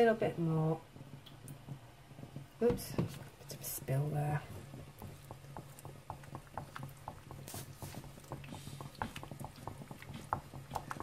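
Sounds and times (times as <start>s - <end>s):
spatula stirring chocolate: 0.0s - 11.0s
spatula knocking bowl sides: 3.8s - 11.0s.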